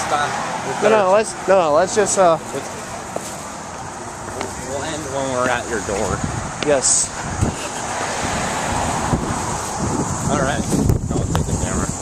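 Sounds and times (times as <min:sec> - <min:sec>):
wind buffeting microphone: 0:04.3 - 0:12.0.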